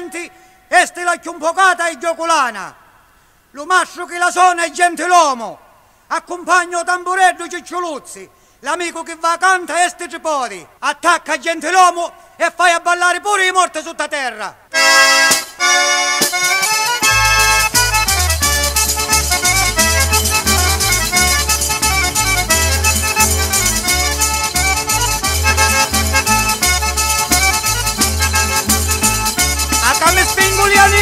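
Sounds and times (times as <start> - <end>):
accordion fast melody: 14.7 - 31.0
tambourine jingles: 16.2 - 31.0
pulsing bass line: 17.0 - 31.0.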